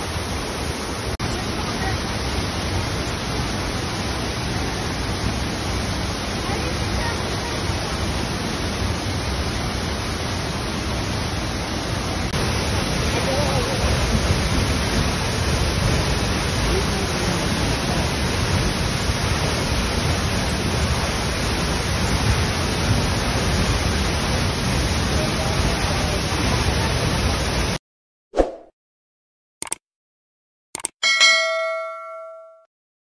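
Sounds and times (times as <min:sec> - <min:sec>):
waterfall rushing: 0:00.0 - 0:27.8.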